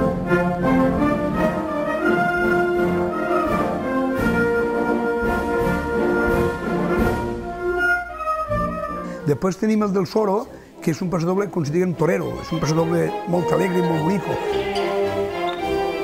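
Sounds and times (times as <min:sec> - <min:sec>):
wind band playing a pasodoble: 0:00.0 - 0:09.6, 0:11.4 - 0:16.0.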